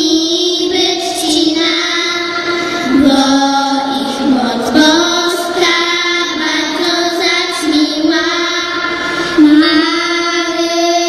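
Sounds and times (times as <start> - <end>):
girls singing a carol: 0.0 - 11.0.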